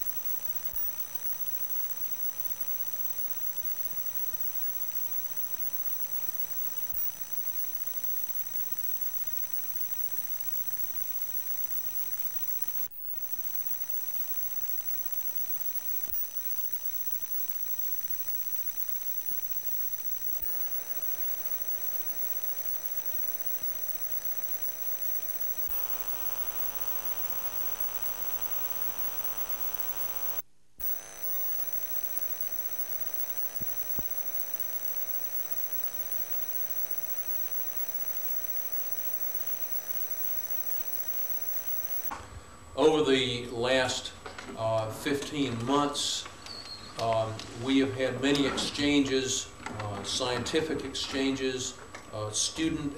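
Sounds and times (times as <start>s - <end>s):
electrical hum and buzz: 0.0s - 42.1s
faint clicks: 0.0s - 42.1s
thin high whine: 0.0s - 42.1s.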